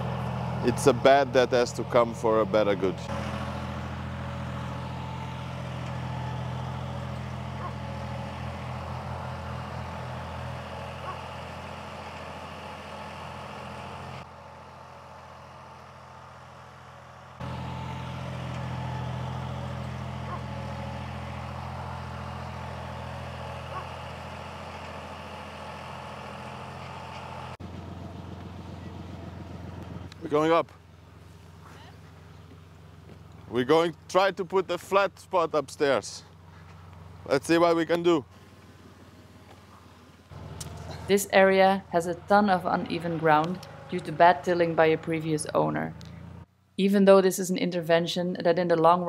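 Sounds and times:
tractor engine under load: 0.0 - 46.7.

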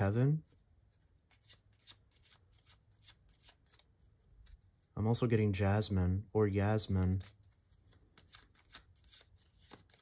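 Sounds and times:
cards being shuffled: 0.9 - 5.0, 7.0 - 10.0.

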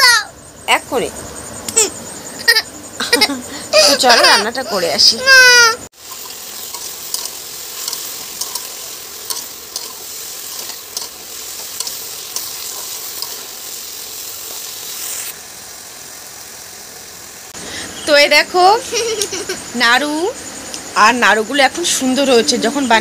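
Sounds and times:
potatoes and onions sizzling in oil: 3.1 - 23.0
metal spatula scraping pan: 6.1 - 13.6.

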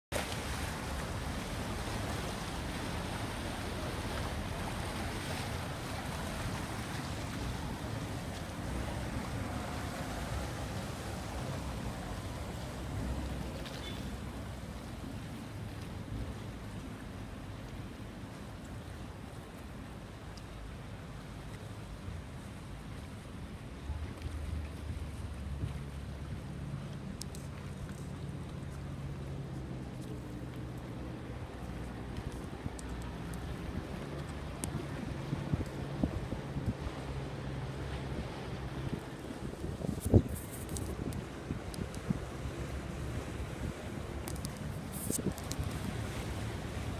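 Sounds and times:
boat wakes churning water: 0.1 - 46.9
motorboat engines: 0.1 - 46.9
wind buffeting microphone: 30.8 - 46.9.

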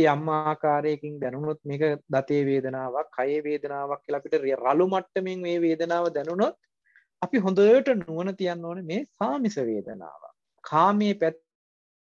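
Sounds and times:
man speaking: 0.0 - 6.6, 7.2 - 11.5.

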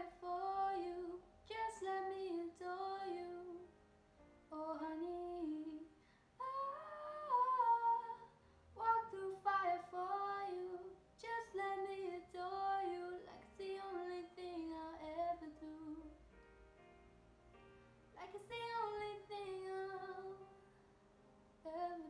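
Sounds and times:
woman singing unaccompanied: 0.0 - 3.7, 4.5 - 16.2, 18.2 - 20.4, 21.7 - 22.0.

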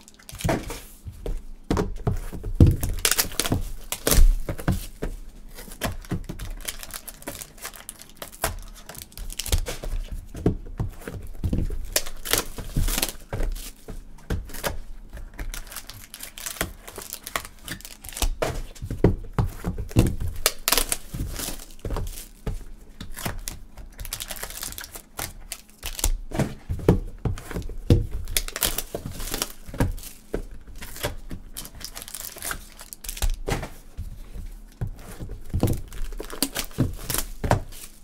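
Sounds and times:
cardboard boxes clicking and crackling: 0.0 - 38.0
foil packs crinkling: 0.0 - 38.0.

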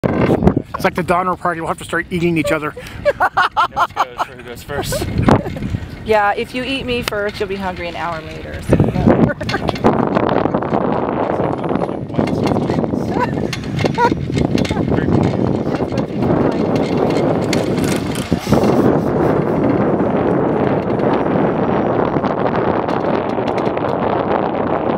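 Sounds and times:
wind rushing on microphone: 0.0 - 24.9.

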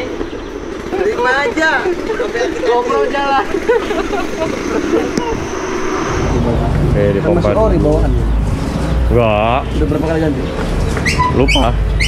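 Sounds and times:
street background noise: 0.0 - 12.0
people talking: 0.9 - 5.5, 6.3 - 8.4, 9.1 - 10.6, 11.2 - 11.8.

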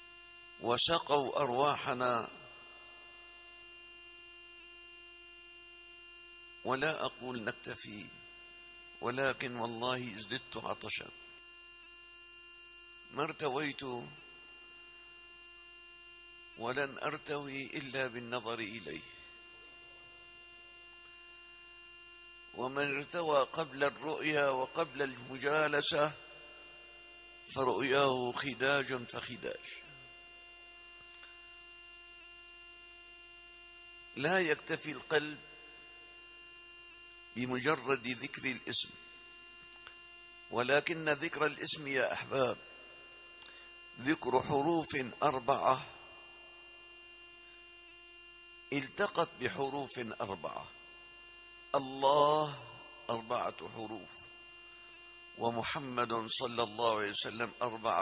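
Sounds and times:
faint electrical hum: 0.0 - 58.0.

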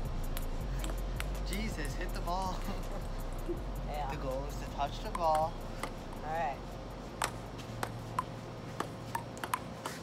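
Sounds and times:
table tennis ball clicks: 5.0 - 6.0, 7.2 - 10.0.

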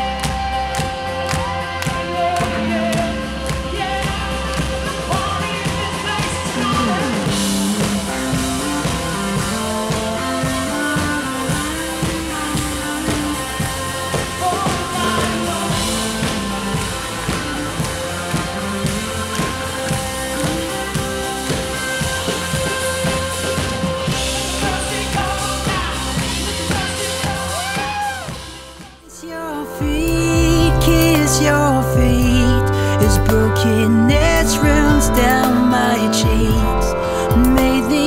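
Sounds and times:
person singing: 0.0 - 28.4, 29.0 - 38.0
crowd clapping along: 0.0 - 38.0
live band playing: 0.0 - 38.0.

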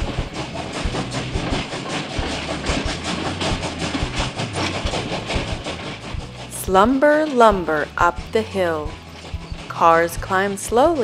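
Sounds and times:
train chuffing and clacking: 0.0 - 11.0.

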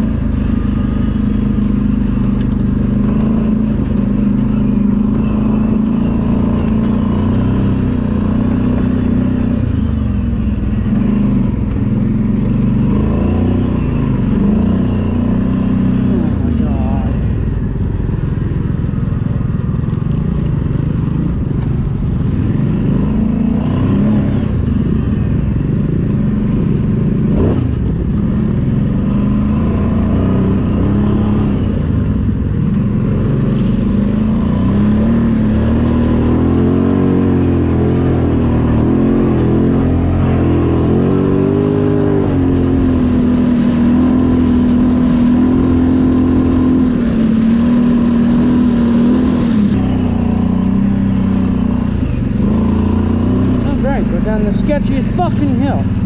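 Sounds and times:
off-road vehicle engine: 0.0 - 56.0.

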